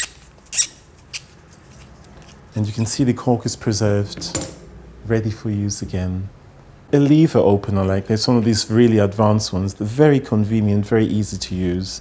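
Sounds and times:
cork squeaking against metal: 0.0 - 1.8.

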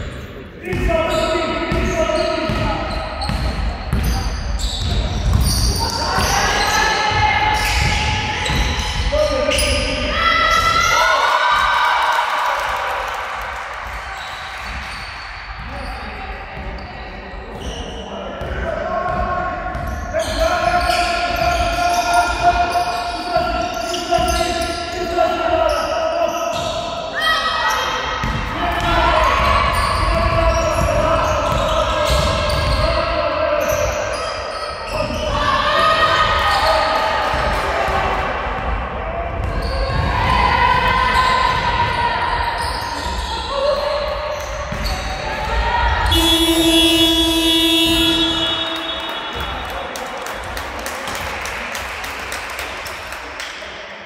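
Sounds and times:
players calling out: 39.3 - 50.7.

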